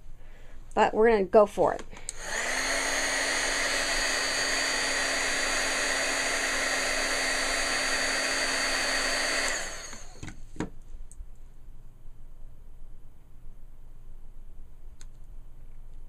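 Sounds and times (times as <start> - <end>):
heat gun fan and motor hum: 1.8 - 10.5.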